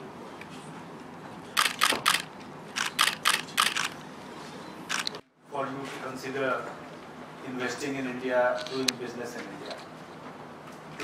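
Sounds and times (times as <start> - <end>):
room background noise: 0.0 - 11.0
camera shutters clicking: 1.6 - 4.1, 4.9 - 5.2, 8.6 - 9.0.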